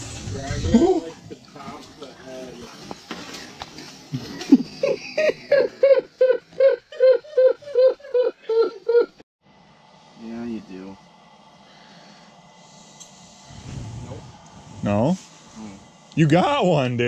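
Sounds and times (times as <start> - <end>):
person laughing hard: 4.2 - 9.2.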